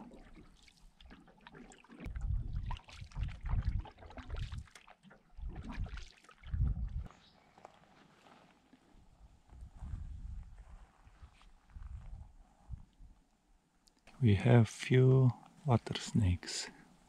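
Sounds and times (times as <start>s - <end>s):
canoe paddles splashing water: 0.0s - 6.6s.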